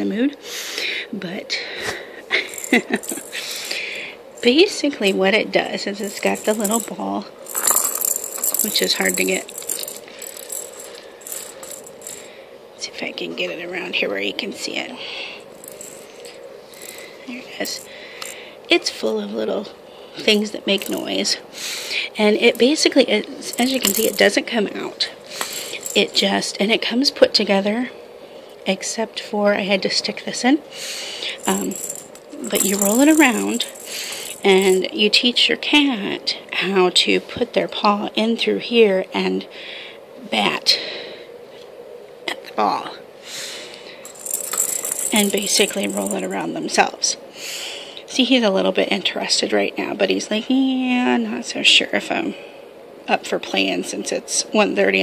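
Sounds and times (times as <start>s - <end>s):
bead ball rattling around plastic track: 2.4s - 12.4s, 15.4s - 18.4s, 20.6s - 21.3s, 22.2s - 24.4s, 25.3s - 26.6s, 31.3s - 35.0s, 44.0s - 46.4s.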